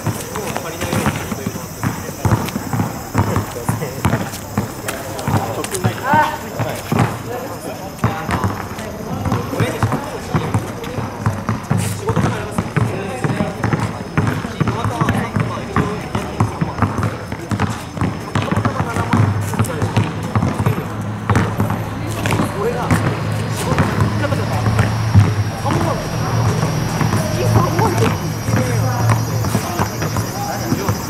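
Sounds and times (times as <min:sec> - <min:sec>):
basketball bouncing on asphalt: 0:00.0 - 0:31.0
voices talking: 0:00.0 - 0:31.0.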